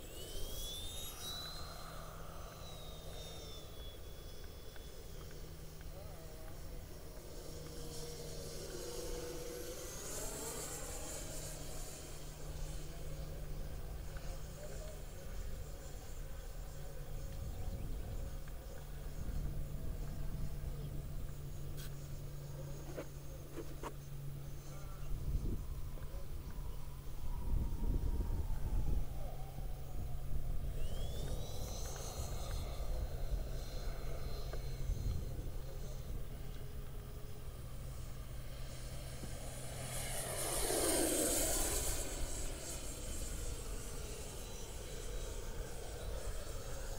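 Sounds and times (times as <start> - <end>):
low steady rumble: 0.0 - 46.9
model jet ducted fans whining: 0.0 - 46.9.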